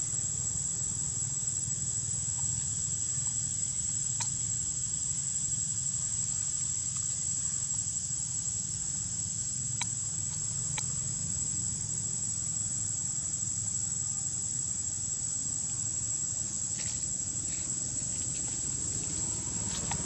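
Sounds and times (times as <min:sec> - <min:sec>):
insects droning: 0:00.0 - 0:20.0
low steady rumble: 0:00.0 - 0:20.0.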